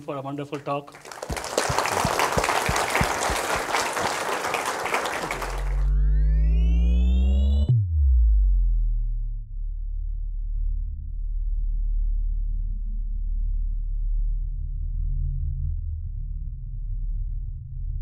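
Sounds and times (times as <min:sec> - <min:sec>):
audience applauding: 0:00.9 - 0:06.0.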